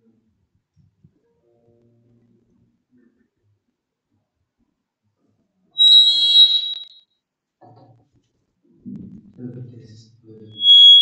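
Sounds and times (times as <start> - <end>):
feedback squeal: 5.8 - 7.0, 10.5 - 11.0.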